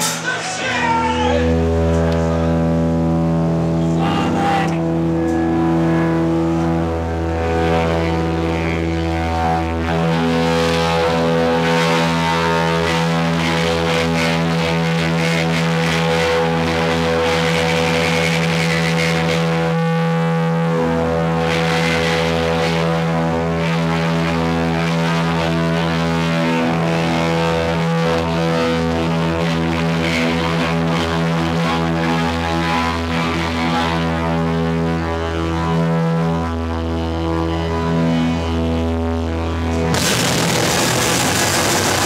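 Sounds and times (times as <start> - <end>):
electric guitars droning chord: 0.0 - 42.0.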